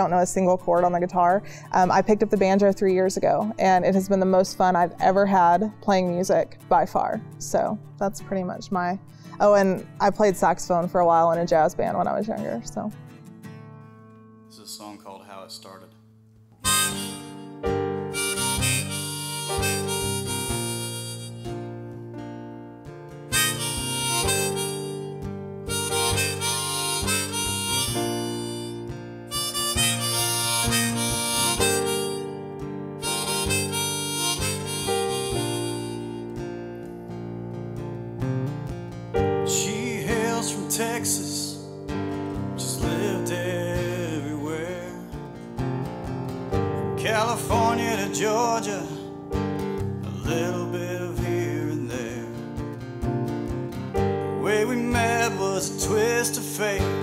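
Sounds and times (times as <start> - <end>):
strummed acoustic guitar: 0.0 - 57.0
harmonica melody: 14.5 - 15.9, 16.6 - 22.2, 23.1 - 37.3, 39.4 - 45.5, 46.5 - 52.3, 54.0 - 57.0
keyboard: 16.6 - 57.0.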